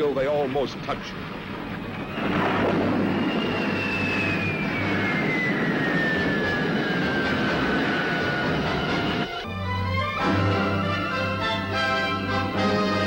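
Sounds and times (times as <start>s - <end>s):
loud rushing roar: 1.0s - 9.5s
high whistle gliding down: 1.8s - 9.5s.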